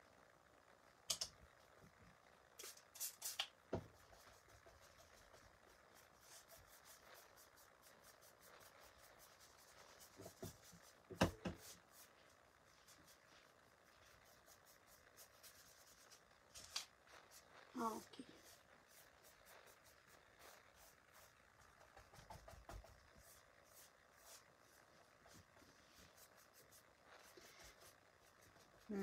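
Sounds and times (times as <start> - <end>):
paintbrush scratching on board: 2.6 - 29.0.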